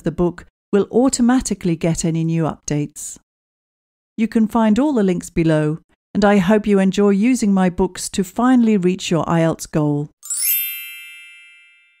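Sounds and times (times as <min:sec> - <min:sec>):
bright bell-like chime: 0:10.2 - 0:12.0.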